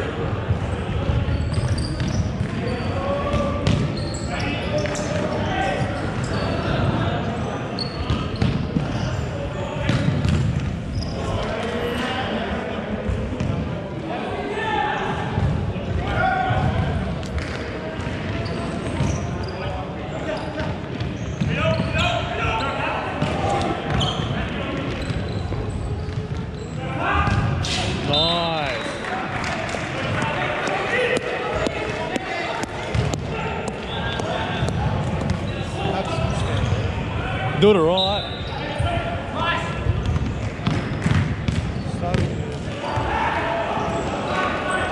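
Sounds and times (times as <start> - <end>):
short squeak: 1.3 - 2.9, 4.0 - 5.1, 7.8 - 9.2, 24.0 - 24.3.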